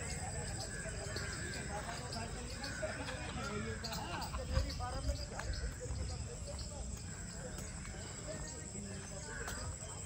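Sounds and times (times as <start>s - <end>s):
footsteps on brick path: 0.0s - 10.0s.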